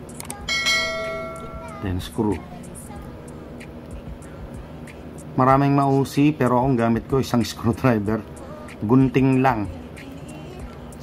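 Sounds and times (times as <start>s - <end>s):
bell-like notification ding: 0.5s - 1.9s.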